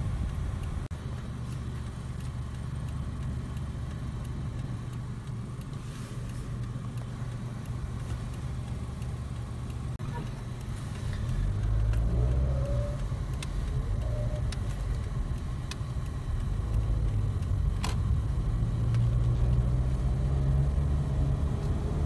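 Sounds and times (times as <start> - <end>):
car engine and road rumble: 0.0 - 22.0.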